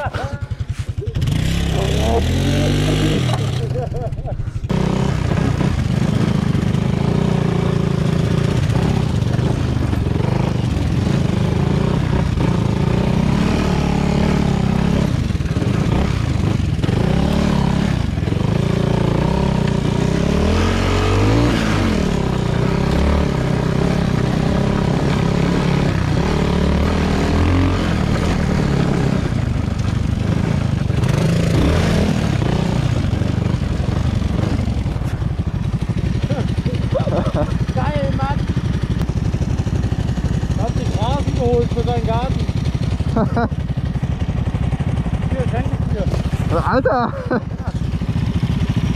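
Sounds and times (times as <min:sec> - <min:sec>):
motorcycle engine revving: 0:00.0 - 0:48.9.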